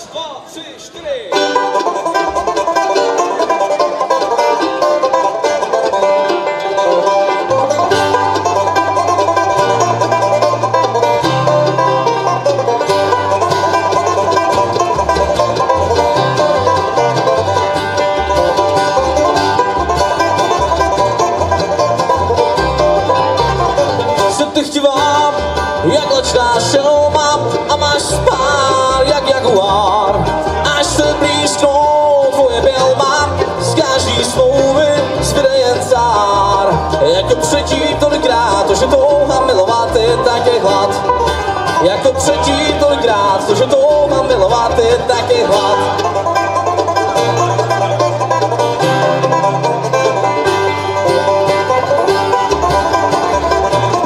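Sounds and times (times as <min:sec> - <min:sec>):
banjo: 0:00.0 - 0:54.0
upright bass: 0:00.0 - 0:54.0
acoustic guitar: 0:01.3 - 0:54.0.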